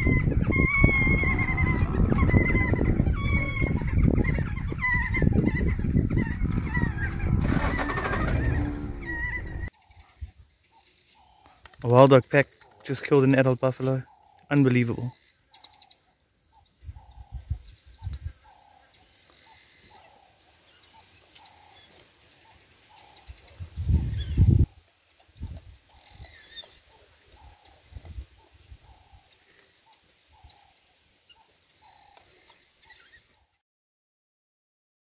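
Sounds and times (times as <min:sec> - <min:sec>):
bird call notes: 0:00.0 - 0:10.1.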